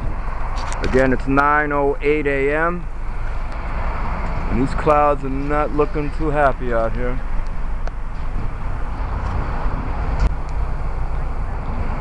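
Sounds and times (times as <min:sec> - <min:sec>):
road traffic rumble: 0:00.0 - 0:12.0
vehicle passing: 0:02.6 - 0:12.0.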